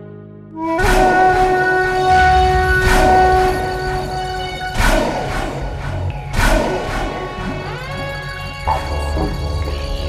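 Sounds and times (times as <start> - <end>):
held horn-like chord: 0.0 - 5.8
dramatic film score: 0.6 - 10.0
low rumble: 1.7 - 9.8.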